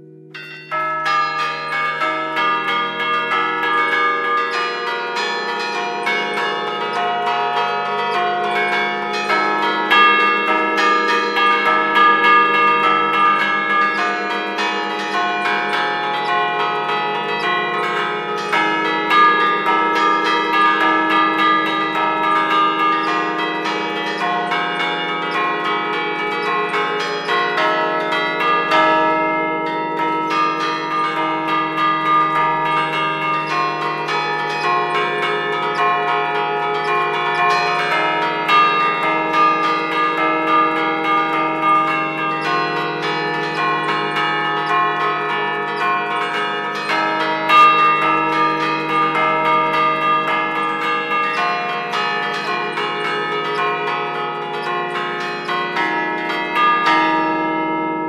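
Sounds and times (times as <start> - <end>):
church bells ringing melody: 0.0 - 58.0.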